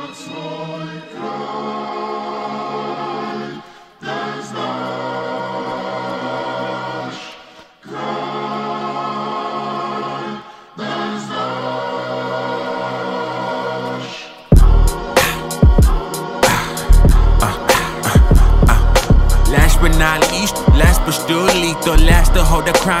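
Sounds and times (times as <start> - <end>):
choir singing long held chords: 0.0 - 23.0.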